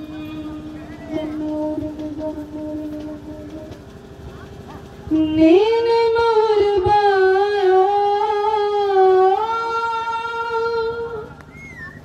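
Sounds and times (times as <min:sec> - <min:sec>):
woman singing long note: 0:00.0 - 0:03.8, 0:05.1 - 0:11.4.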